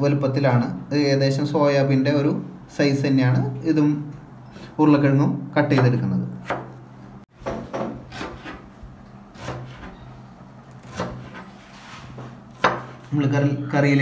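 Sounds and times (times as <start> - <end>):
knife chopping on plastic board: 10.8 - 11.5.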